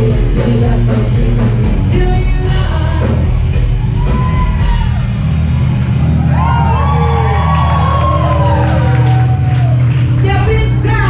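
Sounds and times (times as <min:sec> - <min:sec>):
live rock band playing: 0:00.0 - 0:11.0
crowd cheering and whooping: 0:03.6 - 0:10.6.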